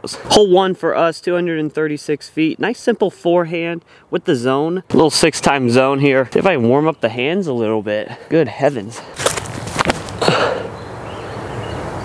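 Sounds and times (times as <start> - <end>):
outdoor background noise: 0.0 - 12.0
breathy vocal grunt: 10.2 - 10.7.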